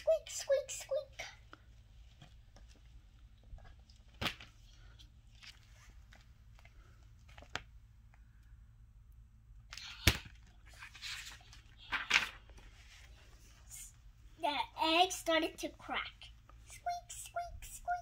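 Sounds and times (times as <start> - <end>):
page rustling: 3.7 - 7.7, 10.8 - 13.2.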